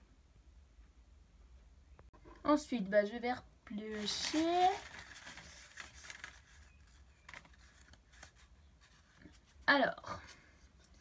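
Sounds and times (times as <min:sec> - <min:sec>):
paper slips rustling: 0:03.8 - 0:09.2.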